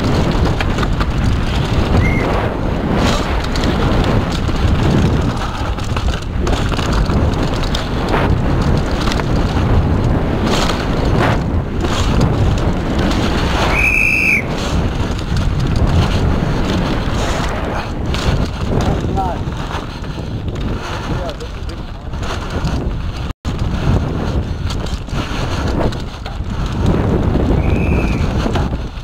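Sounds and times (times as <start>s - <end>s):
bike rattling and knocking: 0.0s - 29.0s
wind rushing over microphone: 0.0s - 29.0s
high-pitched whistle: 2.0s - 2.3s, 13.7s - 14.5s, 27.6s - 28.2s.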